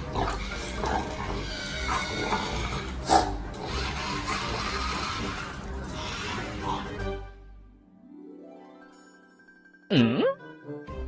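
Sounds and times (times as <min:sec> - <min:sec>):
background music: 0:00.0 - 0:11.0
puppy barking: 0:03.0 - 0:03.4.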